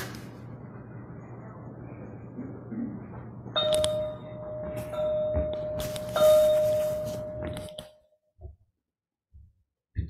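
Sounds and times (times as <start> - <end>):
steady ringing tone: 3.5 - 8.1.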